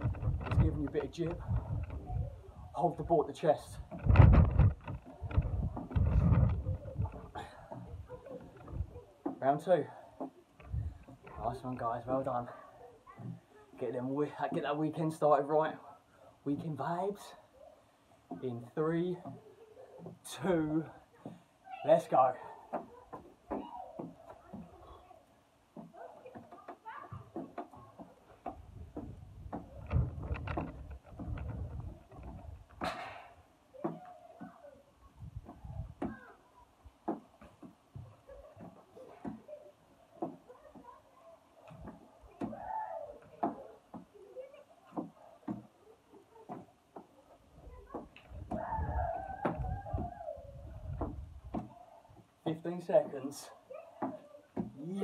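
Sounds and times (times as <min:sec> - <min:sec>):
knocks and thuds: 0:25.8 - 0:34.6, 0:50.8 - 0:51.8.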